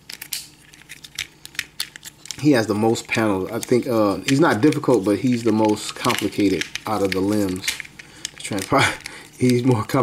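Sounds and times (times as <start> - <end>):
plastic toy parts clicking: 0.0 - 2.4, 3.4 - 10.0.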